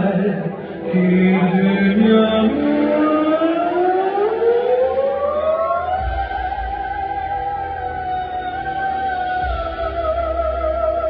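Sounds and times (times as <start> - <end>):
man singing through pa: 0.0 - 3.9.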